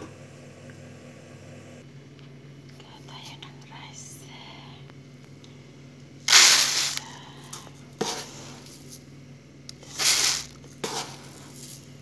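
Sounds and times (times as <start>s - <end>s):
person whispering: 2.8s - 4.9s
rice pouring into bowl: 6.3s - 7.0s, 9.8s - 10.6s.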